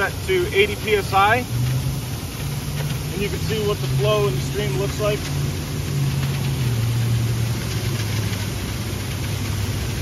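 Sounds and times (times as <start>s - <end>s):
low engine hum: 0.0s - 10.0s
water rushing from fire hose: 0.0s - 10.0s.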